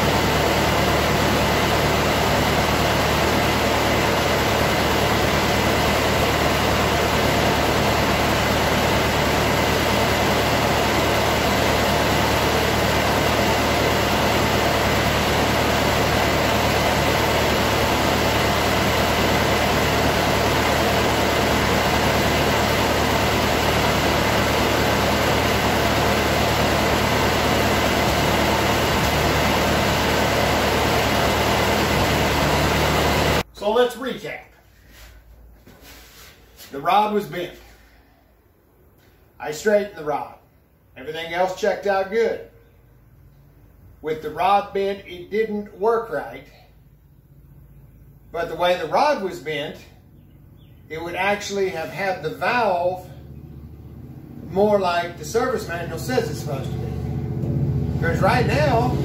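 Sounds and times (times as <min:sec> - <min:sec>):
tractor engine idling: 0:00.0 - 0:33.5, 0:50.0 - 0:59.0.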